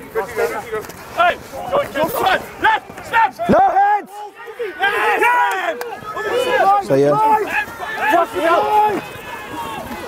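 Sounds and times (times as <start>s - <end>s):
players shouting calls: 0.0s - 10.0s.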